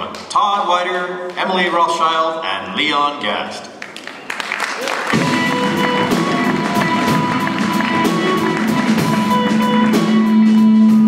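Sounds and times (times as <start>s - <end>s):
quick steady drum beat: 5.1s - 10.4s
sustained instrument notes: 5.2s - 11.0s.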